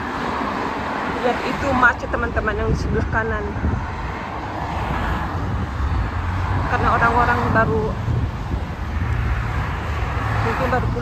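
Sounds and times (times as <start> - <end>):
motorway traffic rushing: 0.0 - 11.0.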